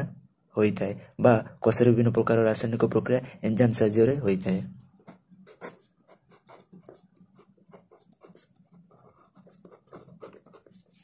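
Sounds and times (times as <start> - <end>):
pen scratching on paper: 5.0 - 11.0.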